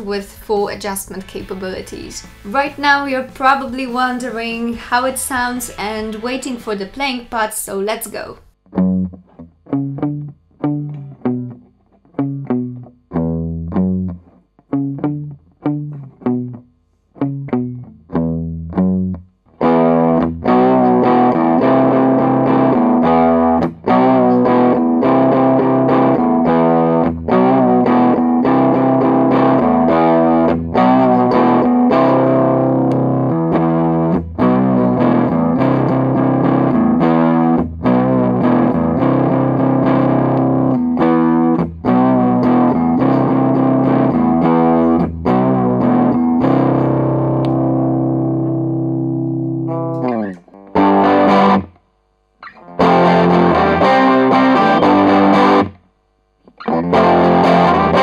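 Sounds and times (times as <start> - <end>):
distorted electric guitar riff: 0.0 - 58.0.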